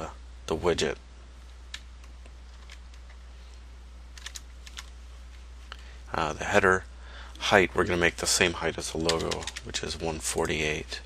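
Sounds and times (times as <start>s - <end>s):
computer keyboard typing: 4.2s - 4.9s, 9.0s - 9.7s.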